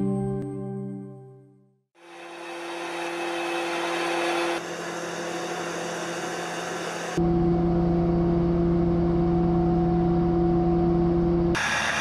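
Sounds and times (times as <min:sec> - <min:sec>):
heavy machinery whirring: 0:02.0 - 0:09.3, 0:10.6 - 0:12.0
low hum: 0:02.1 - 0:11.8.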